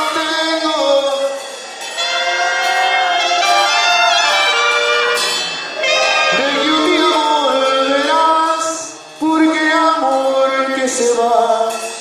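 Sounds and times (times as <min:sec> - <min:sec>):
brass and clarinets sustained harmony: 0:00.0 - 0:09.0.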